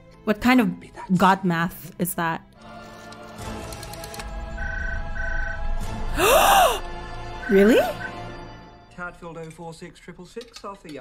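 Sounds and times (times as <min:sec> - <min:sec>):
dramatic background music: 0:02.5 - 0:09.2
telephone ringing electronic beeps: 0:04.6 - 0:05.7.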